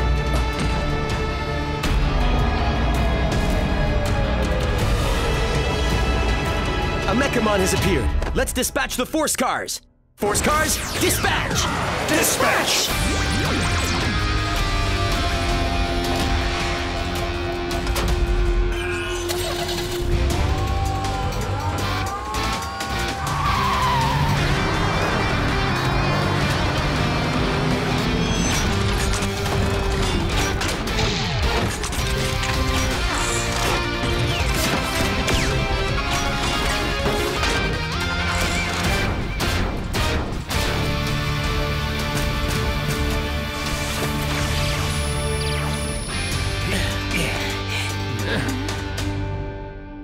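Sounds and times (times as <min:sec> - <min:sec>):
driving action music: 0:00.0 - 0:50.0
car speeding off: 0:23.5 - 0:29.4.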